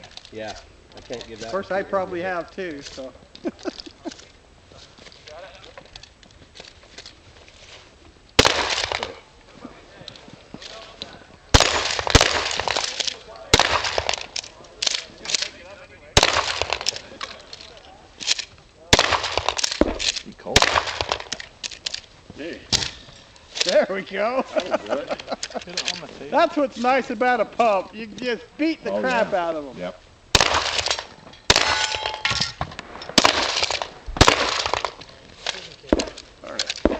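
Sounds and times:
shotgun shots echoing: 0:08.4 - 0:09.2, 0:11.5 - 0:15.6, 0:16.2 - 0:17.4, 0:18.9 - 0:21.4, 0:30.3 - 0:35.1, 0:35.9 - 0:36.9.

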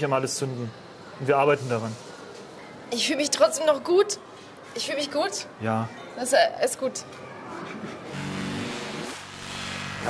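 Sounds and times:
electronic whoosh: 0:08.2 - 0:10.0.

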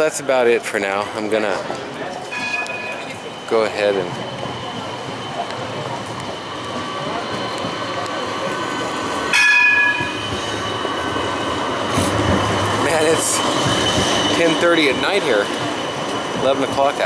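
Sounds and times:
tram rumbling on street rails: 0:00.0 - 0:17.0.

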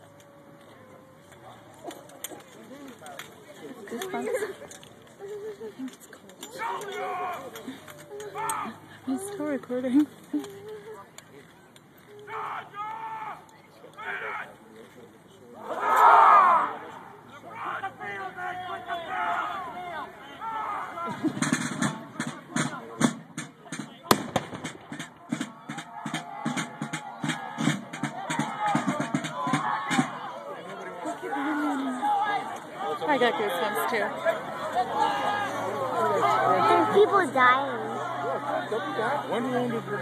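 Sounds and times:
crowd murmur: 0:00.0 - 0:40.0
rapid drumbeat: 0:21.2 - 0:30.3
sharp crack: 0:21.3 - 0:25.9.

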